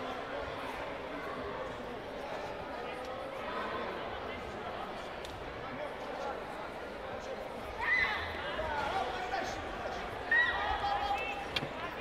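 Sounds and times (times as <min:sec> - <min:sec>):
spectators chattering and calling out: 0:00.0 - 0:12.0.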